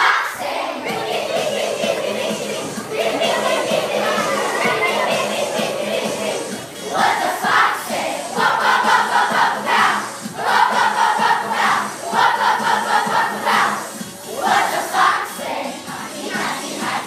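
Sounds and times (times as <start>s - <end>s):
children singing in unison: 0.0s - 17.0s.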